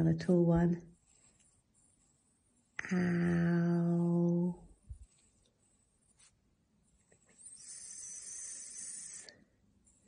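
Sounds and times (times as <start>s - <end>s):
pencil scratching on paper: 0.0s - 2.8s, 4.9s - 7.9s.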